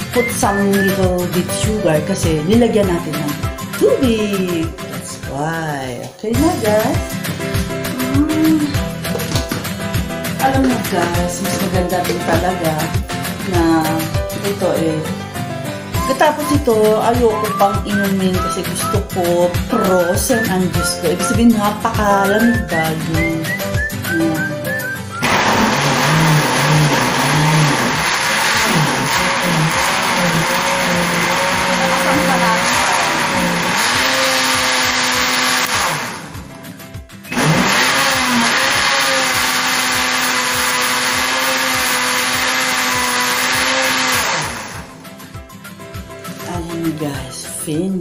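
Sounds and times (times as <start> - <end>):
blender running: 25.1 - 36.6, 37.2 - 45.0.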